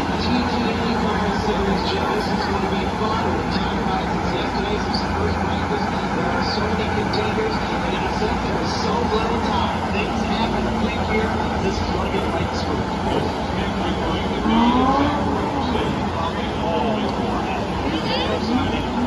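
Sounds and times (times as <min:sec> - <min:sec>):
crowd chatter: 0:00.0 - 0:19.0
race car engines droning: 0:00.0 - 0:19.0
engine revving: 0:13.1 - 0:19.0.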